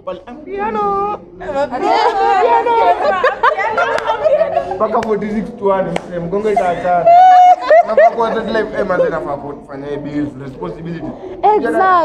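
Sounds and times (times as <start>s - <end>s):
people laughing: 0.7s - 11.4s.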